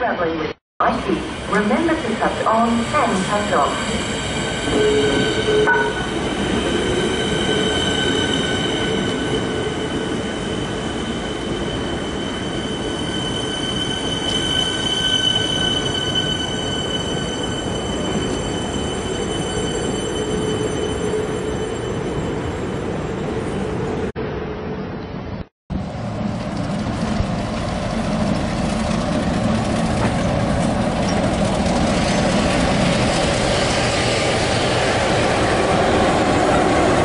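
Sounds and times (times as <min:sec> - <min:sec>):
train wheels on rails: 0:25.8 - 0:37.0.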